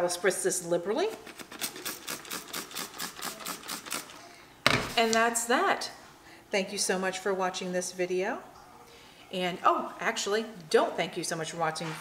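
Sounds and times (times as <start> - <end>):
spray bottle spritzing: 1.4 - 4.2.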